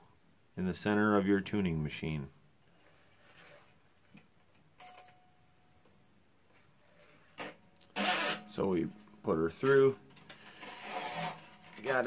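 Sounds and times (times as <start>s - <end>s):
guitar string rubbing: 7.4s - 12.0s
person speaking: 8.4s - 10.1s, 11.2s - 12.0s.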